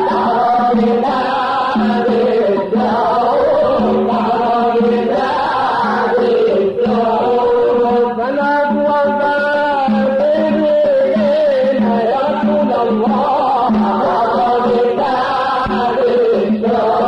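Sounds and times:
voice chanting ornamented melody: 0:00.0 - 0:17.0.

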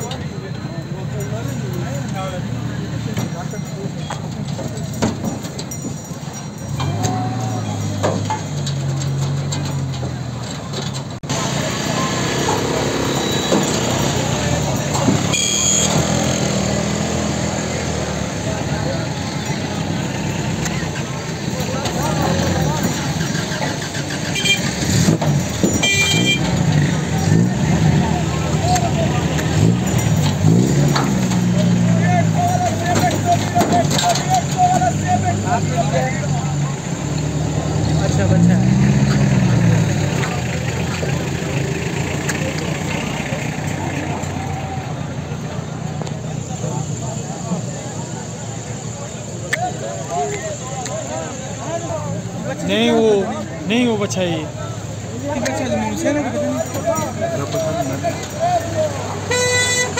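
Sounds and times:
men talking: 0:00.0 - 0:10.2, 0:11.2 - 0:59.9
vehicle engine running: 0:00.0 - 0:59.9.

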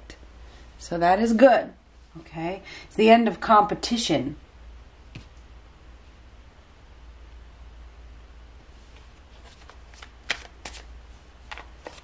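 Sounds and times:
cards being shuffled: 0:08.9 - 0:12.0.

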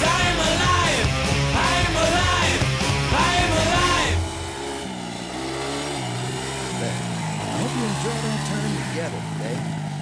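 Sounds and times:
quad bike engine revving: 0:00.0 - 0:10.0.

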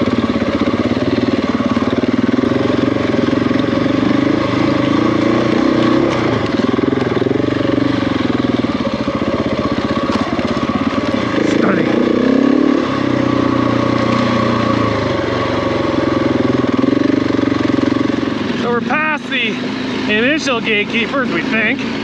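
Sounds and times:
motorcycle engine at low revs: 0:00.0 - 0:22.0.

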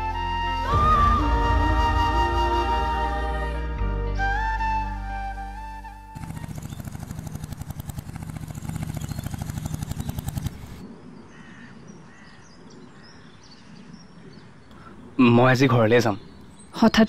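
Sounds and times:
motorcycle engine thumping: 0:06.2 - 0:10.8
bird chirps: 0:08.3 - 0:17.0.

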